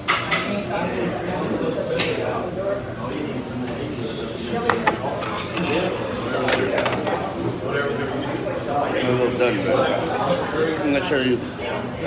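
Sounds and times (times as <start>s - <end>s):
dining room chatter: 0.0s - 12.0s
dishes and cutlery clinking: 4.6s - 7.3s.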